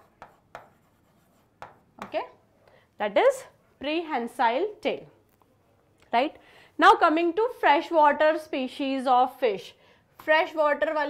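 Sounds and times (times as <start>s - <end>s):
marker writing on a board: 0.0s - 2.2s.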